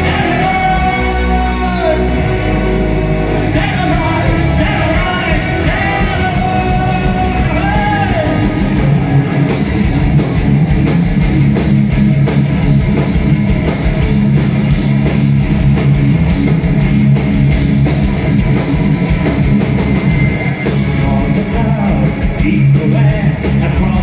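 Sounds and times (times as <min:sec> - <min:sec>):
heavy rock band playing live: 0:00.0 - 0:24.0.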